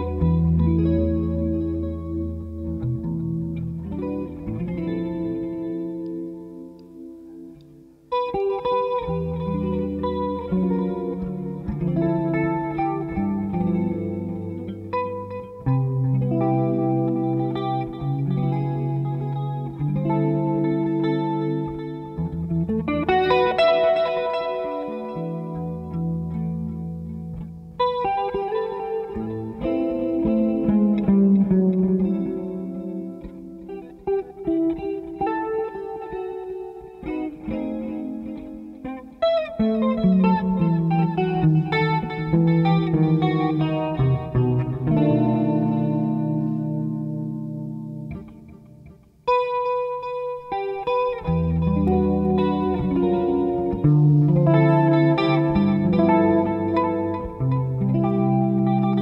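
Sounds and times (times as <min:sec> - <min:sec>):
electric bass guitar: 0:00.0 - 0:59.0
jazz electric guitar: 0:00.0 - 0:59.0.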